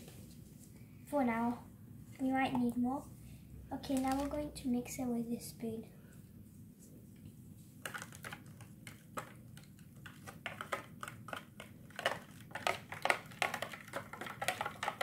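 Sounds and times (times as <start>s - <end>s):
spoon stirring in plastic tray: 7.8s - 15.0s.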